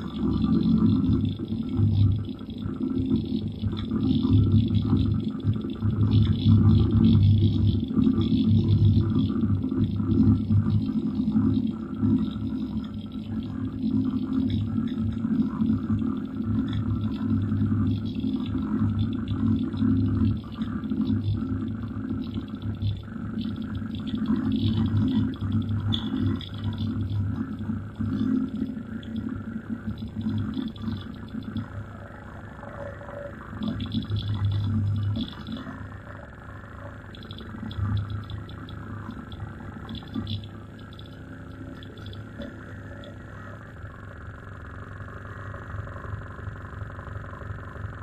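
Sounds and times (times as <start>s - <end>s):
stuttering low electronic drone: 0.0s - 48.0s.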